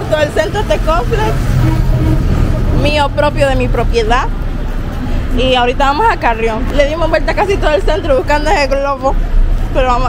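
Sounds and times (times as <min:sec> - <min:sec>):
vehicle engine running: 0:00.0 - 0:10.0
voices: 0:00.0 - 0:10.0.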